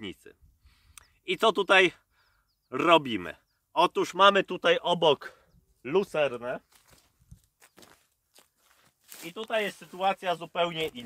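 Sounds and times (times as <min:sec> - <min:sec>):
footsteps on grass: 0:06.2 - 0:11.0.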